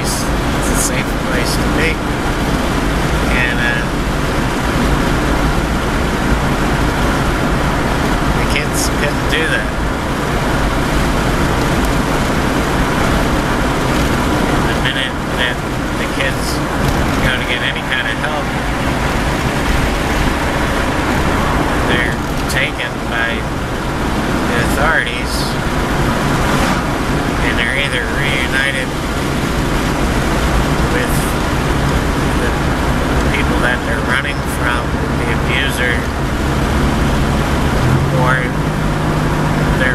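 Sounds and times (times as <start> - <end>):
vehicle road and engine noise: 0.0 - 39.9.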